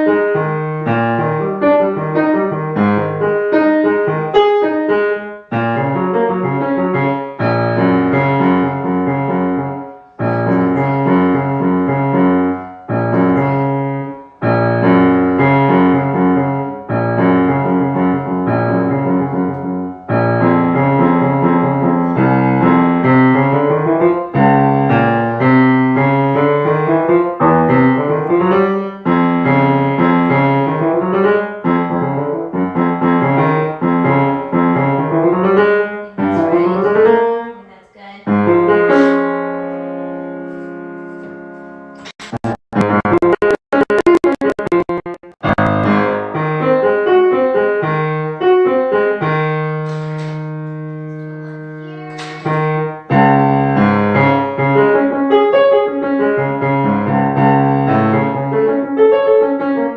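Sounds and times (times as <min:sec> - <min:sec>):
grand piano playing: 0:00.0 - 0:37.5, 0:38.3 - 0:59.9.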